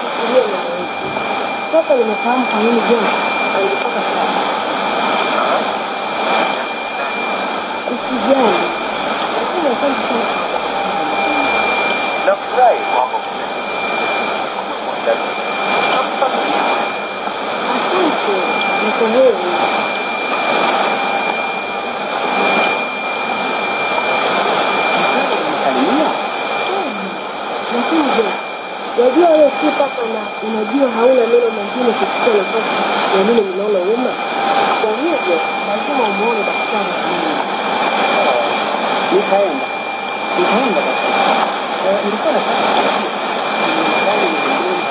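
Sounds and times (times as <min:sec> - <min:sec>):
faint voice on radio: 0:00.0 - 0:21.0, 0:24.2 - 0:28.4, 0:29.0 - 0:44.9
radio hiss and static: 0:00.0 - 0:44.9
thin steady high whistle: 0:00.0 - 0:44.9.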